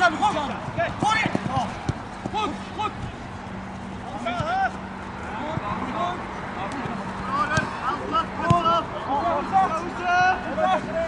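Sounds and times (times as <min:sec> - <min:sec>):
players and spectators shouting: 0:00.0 - 0:11.0
ball being kicked: 0:00.8 - 0:02.1.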